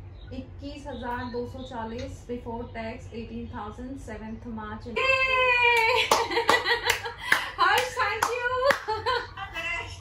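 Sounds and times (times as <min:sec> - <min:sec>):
hands clapping: 0:05.7 - 0:09.0.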